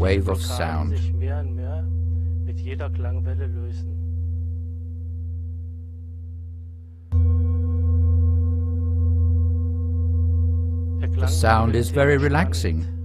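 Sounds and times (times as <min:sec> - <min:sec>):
singing bowl ringing: 0:00.0 - 0:13.0.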